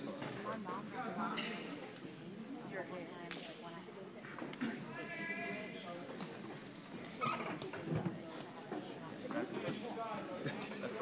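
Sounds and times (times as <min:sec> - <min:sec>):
voices echoing in a gym: 0:00.0 - 0:11.0.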